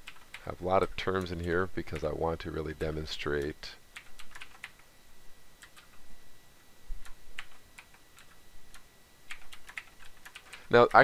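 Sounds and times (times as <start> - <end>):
keyboard typing: 0.0 - 2.2, 2.8 - 4.9, 5.6 - 6.0, 7.0 - 11.0.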